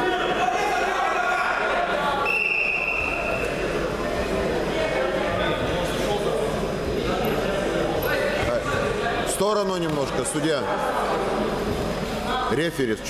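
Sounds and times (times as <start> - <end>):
spectator chatter: 0.0 - 13.0
referee's whistle blast: 2.2 - 3.4.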